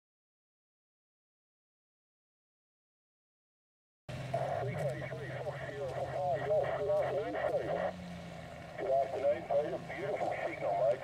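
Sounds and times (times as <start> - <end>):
steady low hum: 4.1 - 11.0
indistinct voices: 4.3 - 8.1, 8.8 - 11.0.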